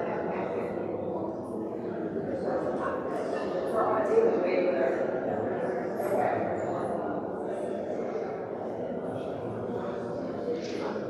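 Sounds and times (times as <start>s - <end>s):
crowd chatter in large hall: 0.0s - 11.0s.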